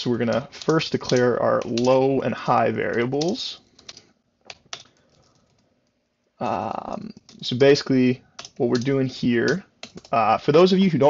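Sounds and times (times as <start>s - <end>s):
faint keyboard keystrokes: 0.2s - 2.1s, 8.4s - 10.2s.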